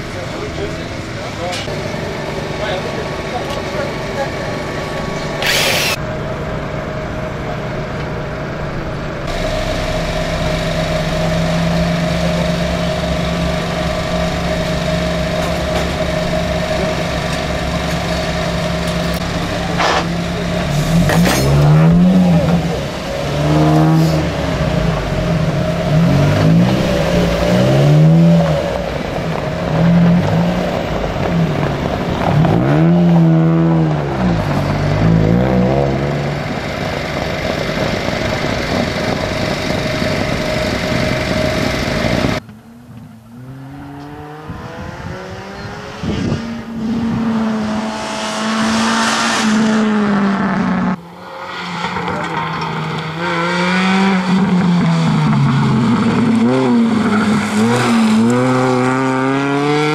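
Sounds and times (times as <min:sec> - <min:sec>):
car engine idling and revving: 0:00.0 - 0:59.9.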